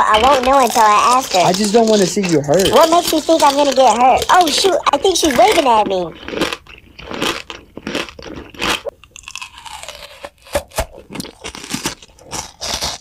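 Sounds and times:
crunching and biting brittle food: 0:00.0 - 0:13.0.

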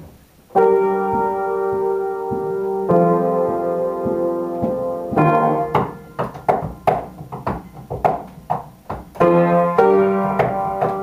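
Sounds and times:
upright piano playing: 0:00.0 - 0:11.0.

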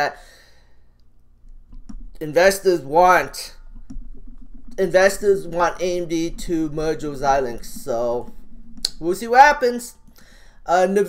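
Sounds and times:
computer mouse clicks: 0:01.7 - 0:02.3.

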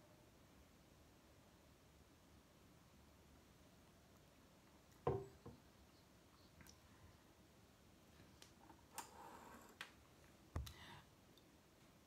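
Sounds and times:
dull thump: 0:05.1 - 0:05.4.

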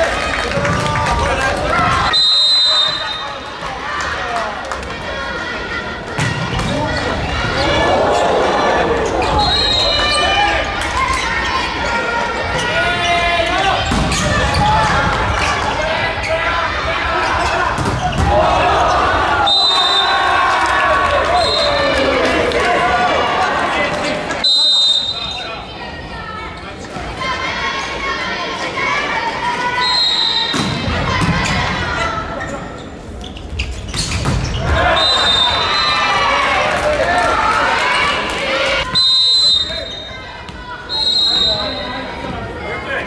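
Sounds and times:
players and crowd shouting: 0:00.0 - 0:32.9, 0:34.5 - 0:43.0.

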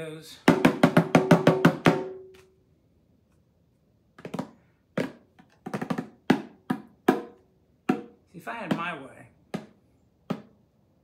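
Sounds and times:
bongos struck with hands: 0:00.5 - 0:02.3, 0:04.2 - 0:10.6.

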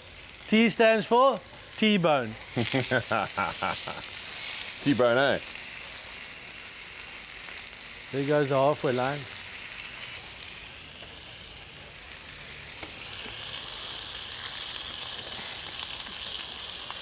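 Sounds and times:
meat sizzling on a grill: 0:00.0 - 0:17.0.

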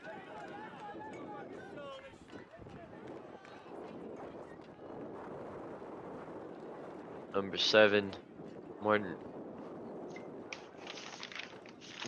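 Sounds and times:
faint outdoor field ambience: 0:00.0 - 0:12.0.

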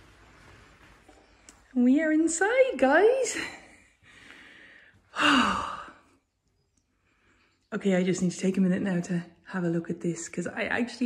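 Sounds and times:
woman sighing: 0:04.1 - 0:06.1.

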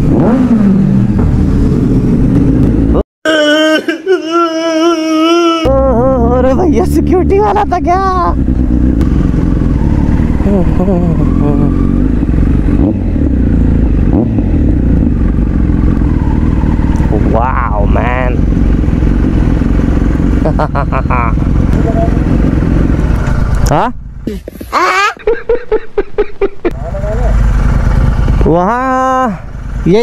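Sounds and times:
motorcycle engine running: 0:05.7 - 0:24.6, 0:26.7 - 0:30.0.

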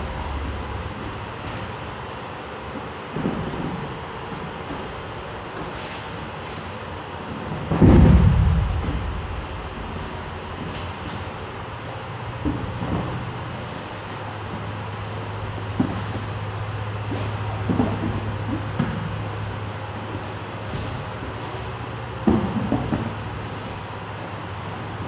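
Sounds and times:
steady low hum: 0:00.0 - 0:25.0
bodies and feet thumping on mats: 0:03.1 - 0:11.3, 0:14.5 - 0:21.6.

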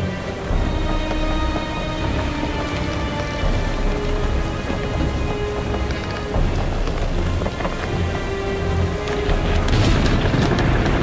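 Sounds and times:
held music notes: 0:00.0 - 0:11.0
steady rain: 0:00.0 - 0:11.0
rumbling thunder: 0:09.3 - 0:11.0.

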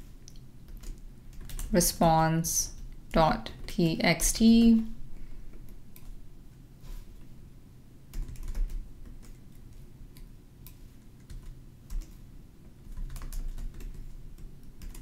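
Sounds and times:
typing on computer keyboard: 0:00.7 - 0:01.7, 0:08.1 - 0:12.2, 0:12.8 - 0:15.0.

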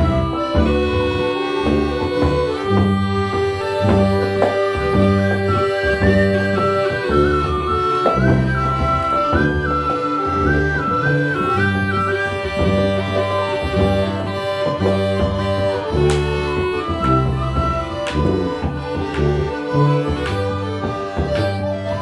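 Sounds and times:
accordion melody: 0:00.0 - 0:22.0
bagpipe melody: 0:00.0 - 0:22.0
tuba bass line: 0:00.0 - 0:22.0
penny whistle trills: 0:03.6 - 0:18.9.

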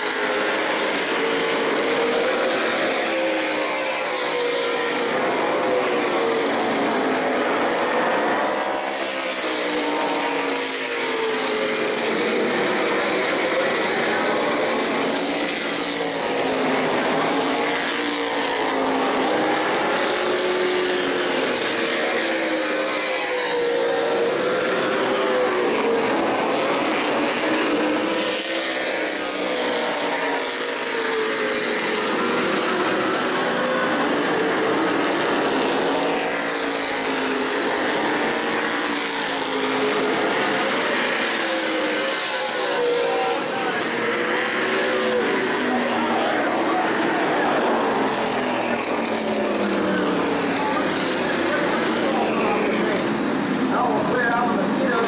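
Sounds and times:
race car engines passing: 0:00.0 - 0:55.0.

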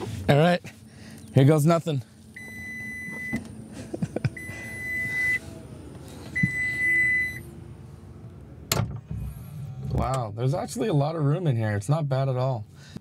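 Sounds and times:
warning beeper long beeps: 0:02.4 - 0:03.4, 0:04.4 - 0:05.5, 0:06.4 - 0:07.5
trunk lid shutting thump: 0:08.6 - 0:10.0.

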